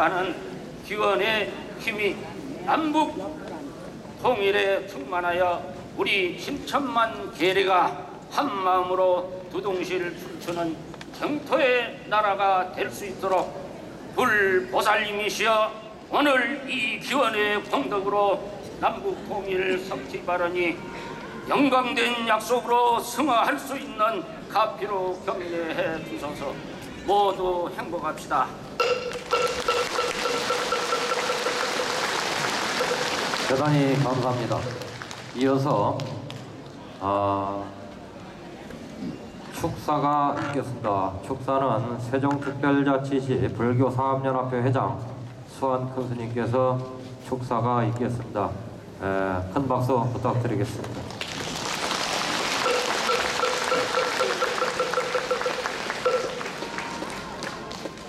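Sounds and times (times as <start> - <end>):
audience applauding: 29.1 - 35.4, 51.1 - 58.0.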